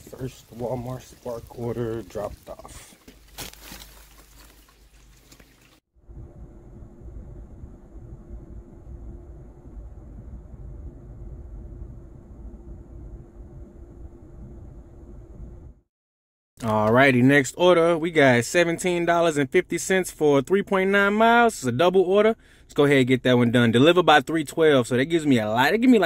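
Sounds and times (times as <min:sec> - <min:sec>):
plastic bags rustling: 0:00.0 - 0:05.8
faint steady hum: 0:06.0 - 0:15.8.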